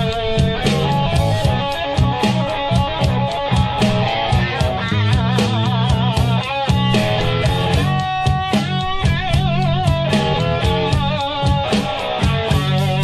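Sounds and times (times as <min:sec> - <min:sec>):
bass guitar: 0:00.0 - 0:13.0
drums: 0:00.0 - 0:13.0
lead electric guitar with vibrato: 0:00.0 - 0:13.0.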